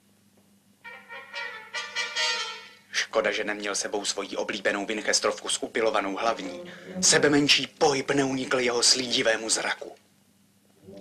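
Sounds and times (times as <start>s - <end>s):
film score music: 0.8s - 2.9s.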